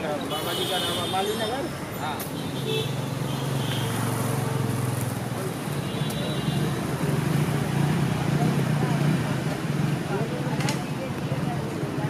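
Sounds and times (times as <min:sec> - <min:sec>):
road traffic: 0:00.0 - 0:12.0
people talking: 0:05.4 - 0:12.0.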